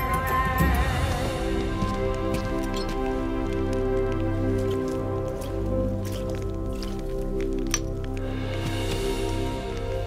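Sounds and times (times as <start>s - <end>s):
film background music: 0.0s - 10.0s.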